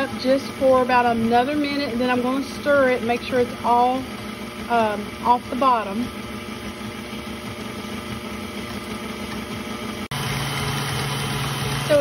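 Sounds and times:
low motor hum: 0.0 - 12.0
stand mixer whisking in steel bowl: 0.0 - 12.0.

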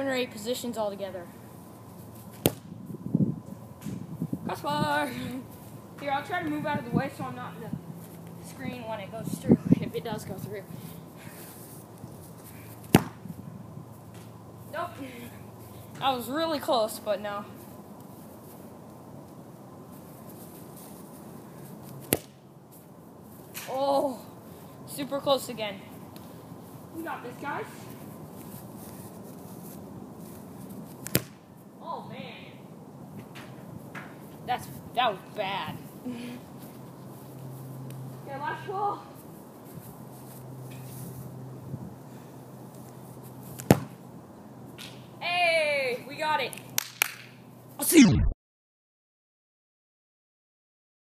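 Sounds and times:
outdoor background noise: 0.0 - 48.4
foot kicking ball: 2.3 - 2.8, 12.8 - 13.4, 22.0 - 22.4, 31.0 - 31.4, 43.6 - 44.0.

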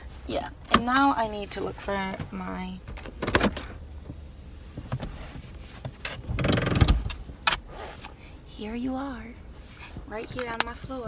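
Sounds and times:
hands rummaging in a car: 0.0 - 8.3
car engine idling hum: 0.0 - 11.0.

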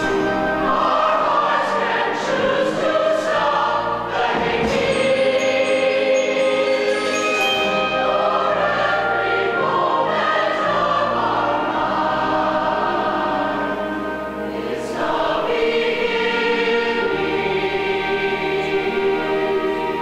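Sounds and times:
mixed choir singing: 0.0 - 20.0
musical backing: 0.0 - 20.0.

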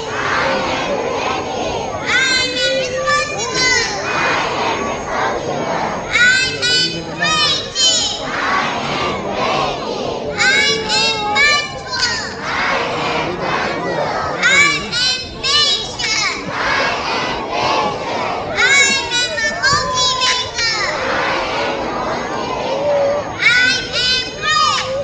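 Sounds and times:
children shouting a chant: 0.0 - 25.0
crowd murmur: 0.0 - 25.0.

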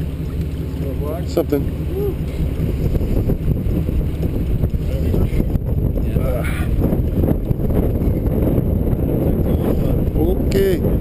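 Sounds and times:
boat background noise: 0.0 - 11.0
wind rumbling on microphone: 0.0 - 11.0.

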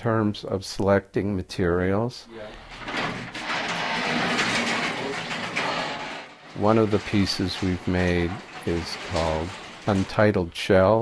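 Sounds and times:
garage door rattling on tracks: 2.3 - 10.4.

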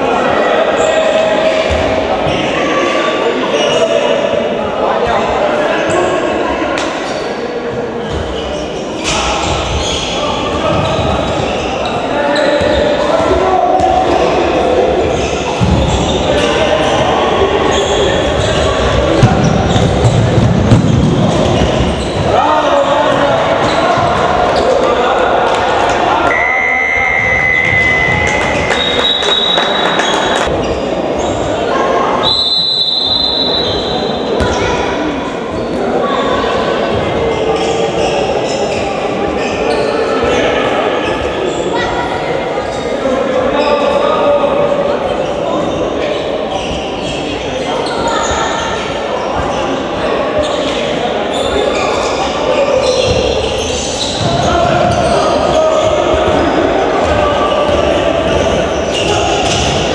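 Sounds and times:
voices echoing in a hall: 0.0 - 59.9.

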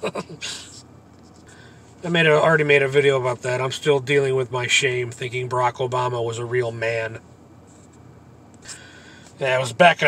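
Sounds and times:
man chuckling: 0.0 - 0.8
breathy exhale: 8.6 - 9.4.

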